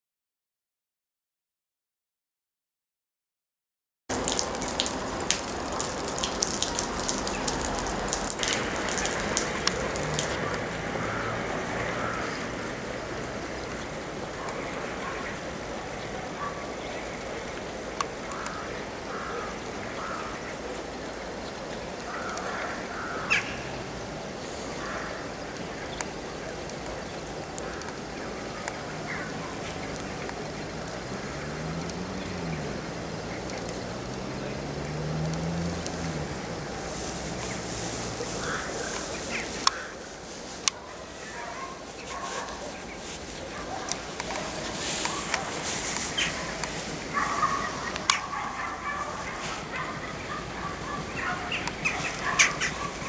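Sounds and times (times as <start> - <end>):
faint calls: 4.2 - 53.0.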